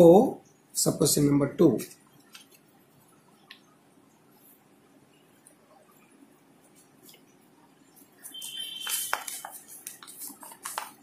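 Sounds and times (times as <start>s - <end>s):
paper rustling: 8.0s - 11.0s.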